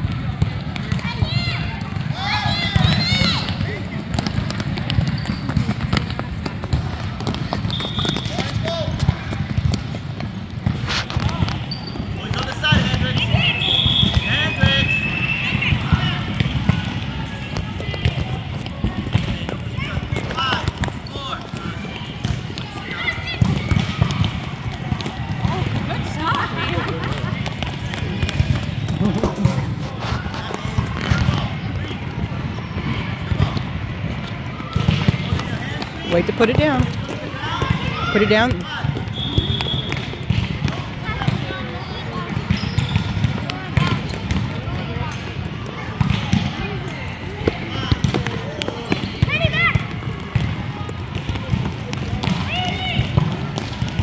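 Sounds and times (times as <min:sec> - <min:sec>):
ball kicked and bouncing: 0:02.7 - 0:14.8, 0:15.5 - 0:31.6, 0:32.8 - 0:41.5, 0:42.3 - 0:44.5, 0:46.0 - 0:46.6, 0:47.4 - 0:54.0.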